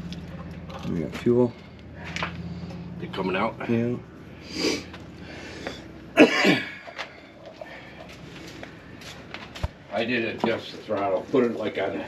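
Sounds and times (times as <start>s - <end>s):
person coughing: 6.2s - 6.9s.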